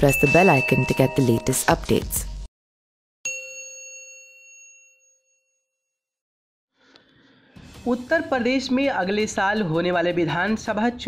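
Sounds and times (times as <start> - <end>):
bright bell ding: 0.0 - 2.2, 3.2 - 5.6.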